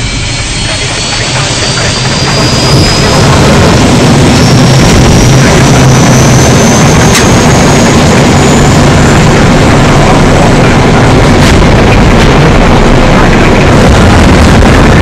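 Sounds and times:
jet engine roar with rising whine: 0:00.0 - 0:15.0.

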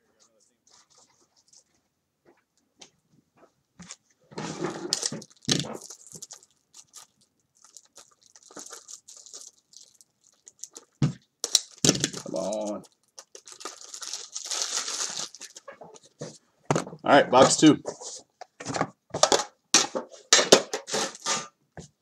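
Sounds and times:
plastic wrapping crinkling and tearing: 0:04.6 - 0:16.4.

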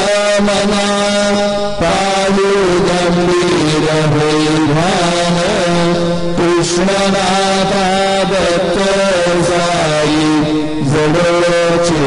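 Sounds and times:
person singing a hymn: 0:00.0 - 0:12.0.

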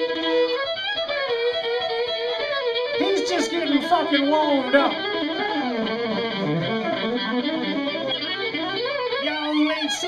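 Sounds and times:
bowed violin solo: 0:00.0 - 0:10.0.

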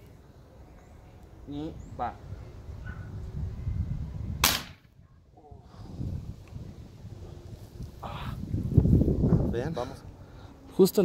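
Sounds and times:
air rifle shot: 0:04.4 - 0:04.9.

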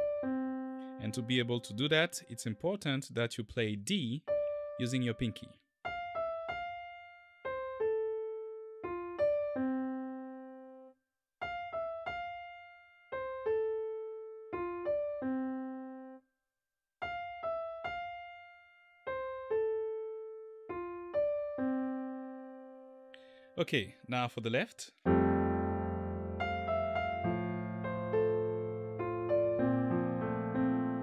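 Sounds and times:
slow piano melody: 0:00.0 - 0:02.6, 0:04.2 - 0:16.2, 0:17.0 - 0:23.6, 0:25.0 - 0:31.0.

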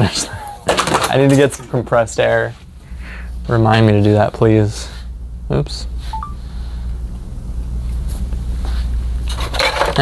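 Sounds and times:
parts rustling and clattering: 0:00.6 - 0:02.6, 0:09.2 - 0:10.0.

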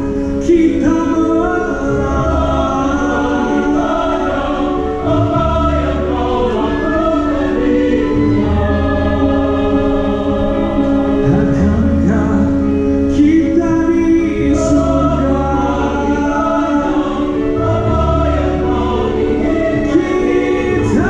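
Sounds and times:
low bass notes: 0:00.0 - 0:21.0
orchestra and choir held chords: 0:00.0 - 0:21.0.

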